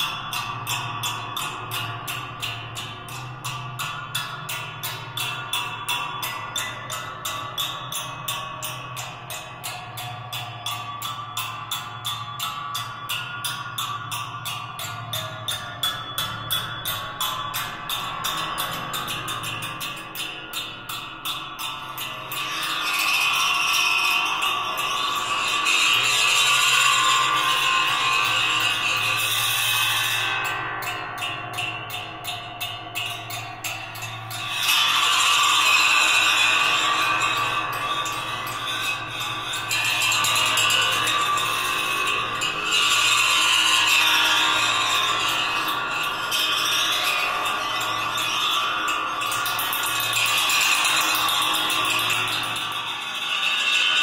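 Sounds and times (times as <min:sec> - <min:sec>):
metallic ringing and squealing: 0:00.0 - 0:54.0.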